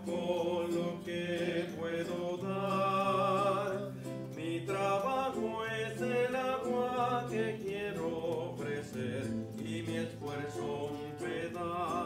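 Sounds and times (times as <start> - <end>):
acoustic guitar: 0.0 - 12.0
man singing a hymn: 0.0 - 12.0.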